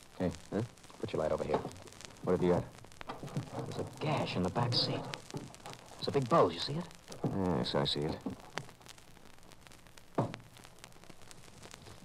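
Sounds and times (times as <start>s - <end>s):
radio recording hiss: 0.0s - 12.0s.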